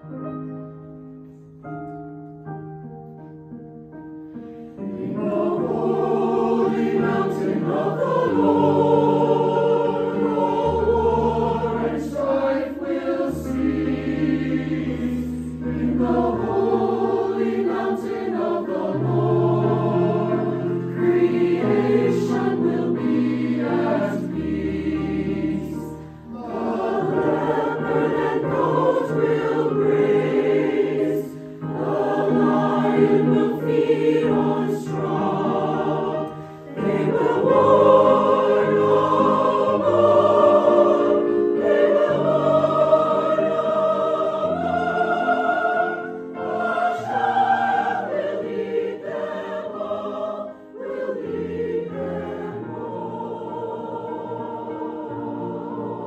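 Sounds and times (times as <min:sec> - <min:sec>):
keyboard accompaniment: 0:00.0 - 0:56.0
choir singing: 0:04.6 - 0:56.0
singers breathing: 0:25.9 - 0:26.4, 0:36.3 - 0:36.7.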